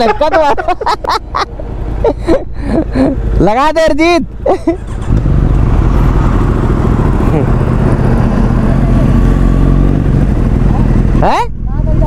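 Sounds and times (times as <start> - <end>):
motorcycle engine running: 1.5 - 12.0.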